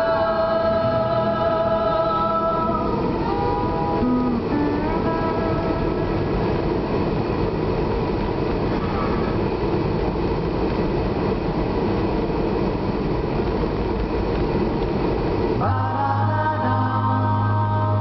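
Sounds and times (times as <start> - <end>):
music: 0.0 - 6.5, 15.6 - 18.0
car engine and road noise: 0.0 - 18.0.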